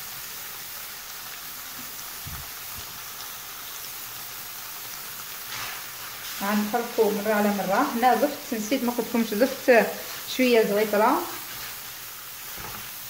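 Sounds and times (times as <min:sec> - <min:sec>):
rice sizzling in oil: 0:00.0 - 0:13.0
stirring scrape in pot: 0:05.4 - 0:06.4, 0:11.4 - 0:11.9, 0:12.5 - 0:13.0.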